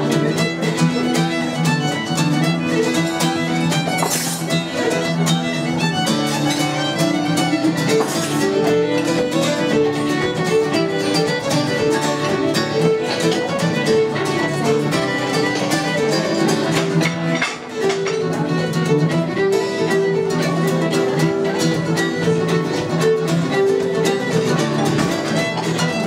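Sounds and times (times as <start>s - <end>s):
accompanying instrument: 0.0s - 26.0s
fiddle playing a reel: 0.0s - 26.0s.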